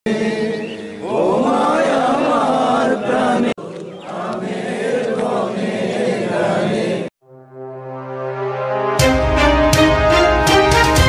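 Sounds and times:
group singing in unison: 0:00.1 - 0:07.1.

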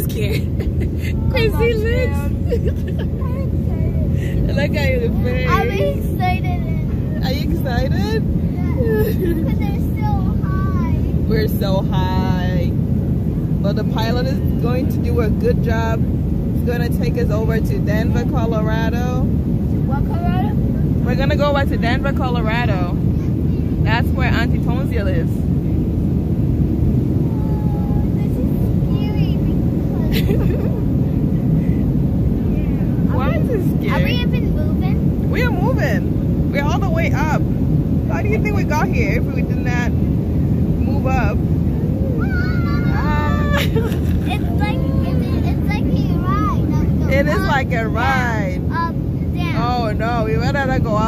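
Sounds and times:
airplane cabin rumble: 0:00.0 - 0:51.0
children's voices: 0:01.0 - 0:04.4, 0:05.1 - 0:07.2, 0:08.5 - 0:11.2, 0:27.3 - 0:30.4, 0:33.1 - 0:35.4, 0:42.0 - 0:48.0
faint voices: 0:27.2 - 0:51.0.

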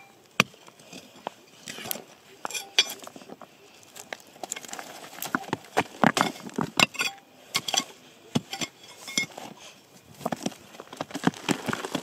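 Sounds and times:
scraping of soil and pebbles: 0:00.0 - 0:12.0
metal blade clinking on rock: 0:02.5 - 0:03.0, 0:06.3 - 0:07.9.

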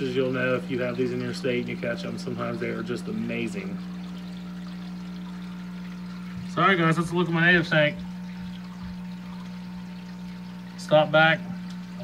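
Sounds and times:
pump humming: 0:00.0 - 0:12.0
water trickling and bubbling: 0:00.0 - 0:12.0.

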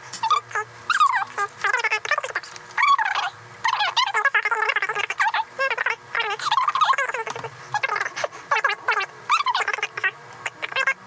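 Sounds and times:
sped-up high-pitched voices chatter: 0:00.2 - 0:11.0.

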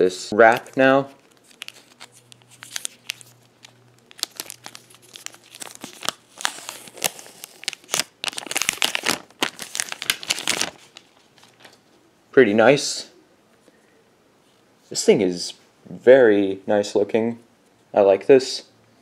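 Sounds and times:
plastic film crinkling: 0:00.4 - 0:11.8.

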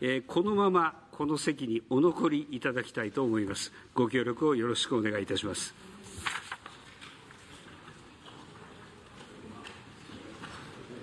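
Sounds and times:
man speaking: 0:00.0 - 0:05.8.

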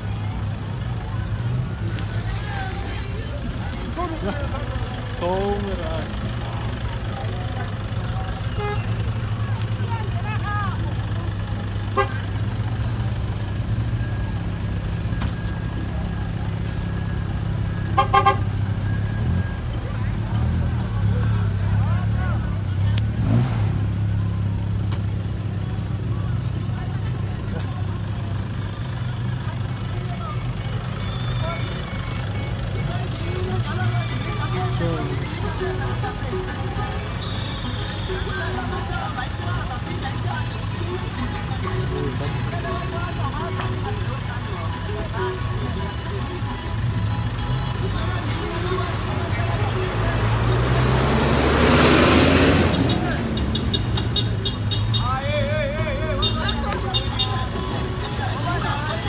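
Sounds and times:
vehicle engines humming: 0:00.0 - 0:59.0
car horn short beeps: 0:08.4 - 0:09.0, 0:11.9 - 0:12.3, 0:17.8 - 0:18.6, 0:37.0 - 0:38.6, 0:52.7 - 0:55.2, 0:56.1 - 0:57.6.

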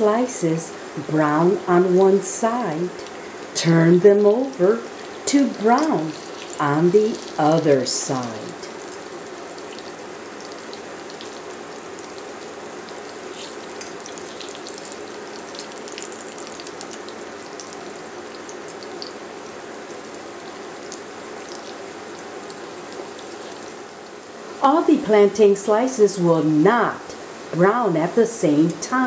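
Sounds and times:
plantain slices sizzling in a pan: 0:04.1 - 0:24.5.

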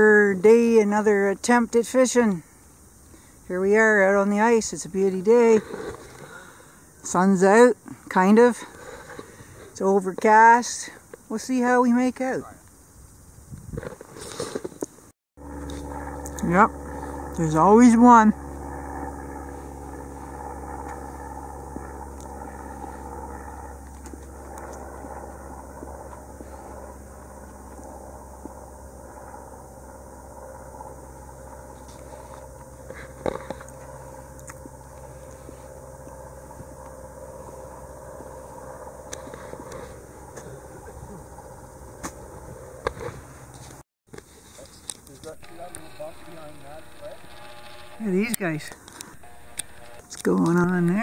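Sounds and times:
propeller airplane engine drone: 0:00.0 - 0:12.9, 0:13.9 - 0:51.0
sharp clicks: 0:44.9 - 0:51.0.

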